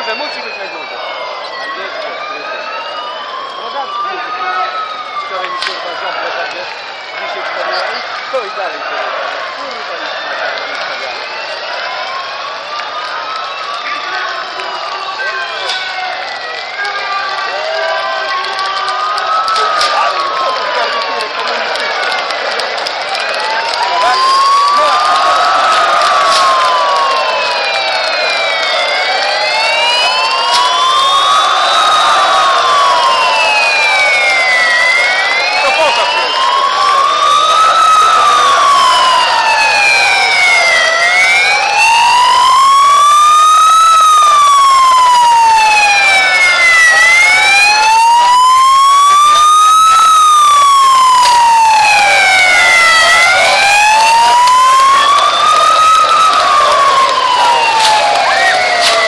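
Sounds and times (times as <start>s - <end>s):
wailing siren: 0.0s - 59.0s.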